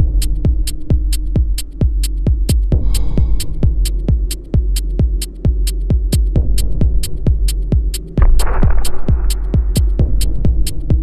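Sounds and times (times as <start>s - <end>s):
minimal techno music: 0.0s - 11.0s
steady kick drum: 0.0s - 11.0s
low bass drone: 6.6s - 11.0s.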